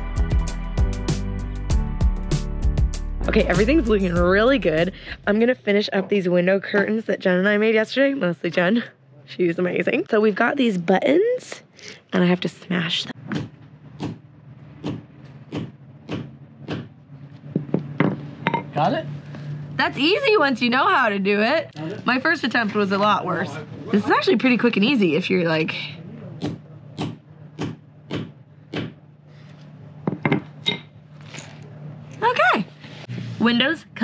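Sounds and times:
low hum: 3.2s - 5.8s.

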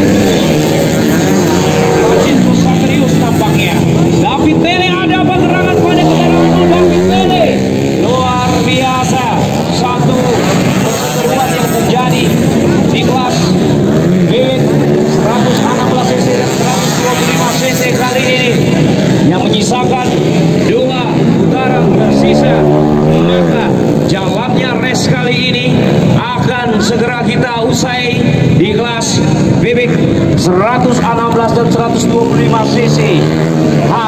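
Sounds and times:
dirt bike engines revving: 0.0s - 34.0s.

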